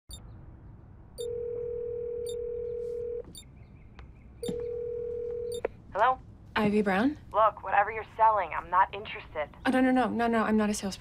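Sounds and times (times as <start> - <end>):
telephone ringback tone: 1.2 - 3.3, 4.4 - 5.6.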